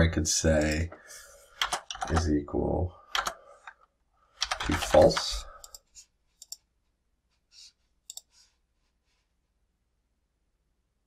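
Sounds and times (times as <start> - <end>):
computer mouse clicks: 1.6 - 2.2, 3.1 - 3.8, 4.4 - 6.7, 8.0 - 8.4.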